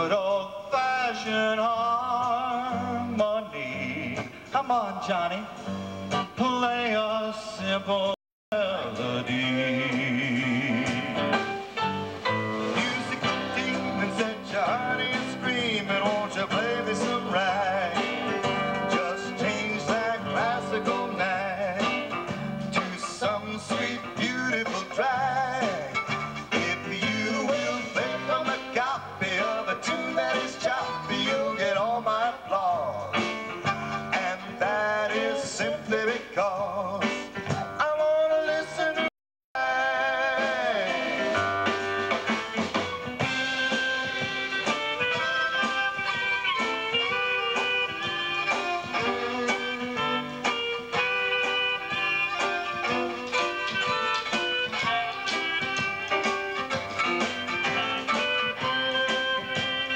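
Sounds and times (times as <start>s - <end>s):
live band playing: 1.4s - 7.8s, 8.6s - 59.9s
keyboard melody: 8.6s - 35.8s, 36.6s - 59.9s.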